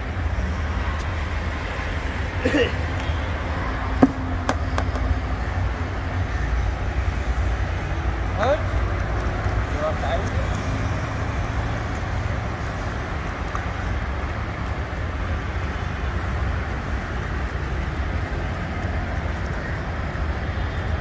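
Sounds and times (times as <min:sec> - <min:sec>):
low rumble of road traffic: 0:00.0 - 0:21.0.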